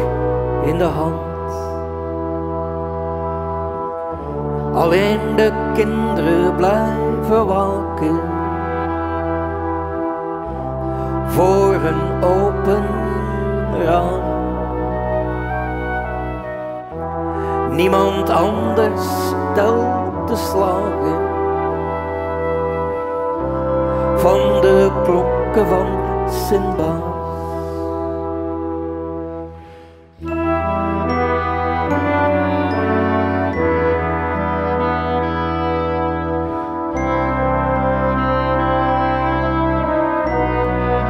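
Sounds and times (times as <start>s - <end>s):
brass band sustained chord: 0.0s - 41.0s.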